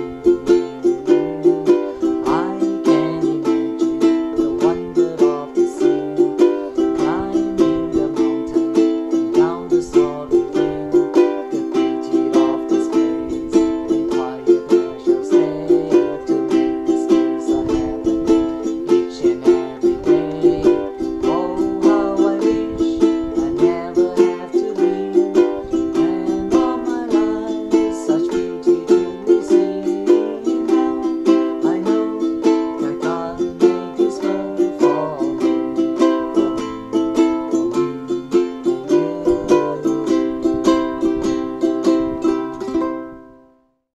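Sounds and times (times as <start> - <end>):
ukulele strumming: 0.0 - 43.7.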